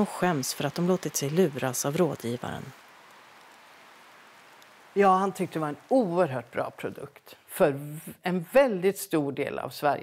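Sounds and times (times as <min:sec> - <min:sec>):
light rain hiss: 0:00.0 - 0:10.0.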